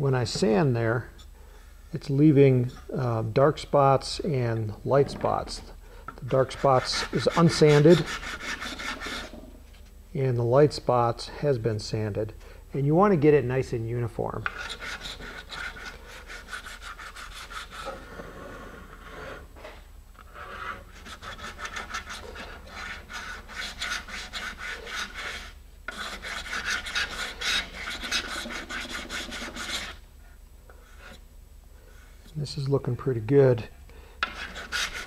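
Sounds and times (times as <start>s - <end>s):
sandpaper rubbing on epoxy: 6.4s - 9.4s, 14.5s - 19.4s, 20.3s - 30.0s, 34.2s - 35.0s.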